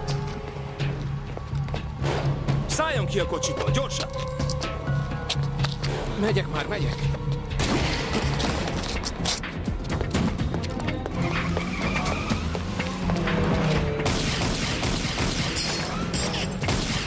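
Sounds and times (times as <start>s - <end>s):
tense action film music: 0.0s - 17.0s.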